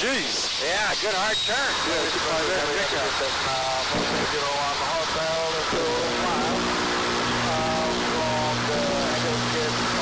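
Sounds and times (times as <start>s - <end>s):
voices over aircraft intercom: 0.0s - 6.8s, 7.4s - 10.0s
aircraft engine and airflow: 1.2s - 10.0s.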